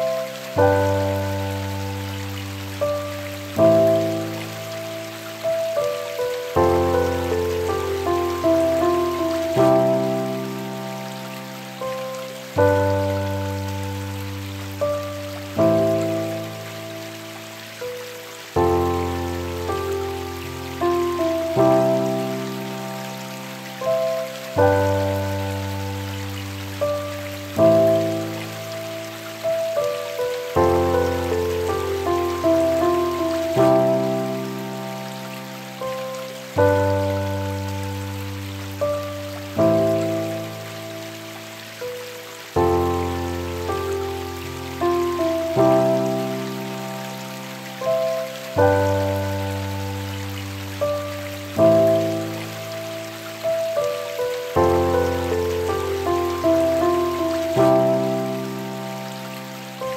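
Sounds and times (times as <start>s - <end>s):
rain hiss: 0.0s - 59.9s
slow calm piano music: 0.0s - 59.9s.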